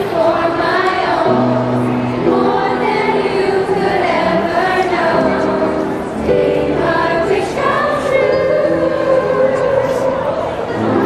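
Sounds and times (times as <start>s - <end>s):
chorus singing held notes: 0.0s - 11.0s.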